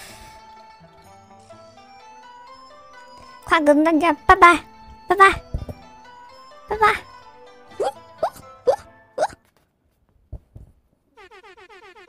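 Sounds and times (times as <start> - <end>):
background music: 0.0 - 9.4.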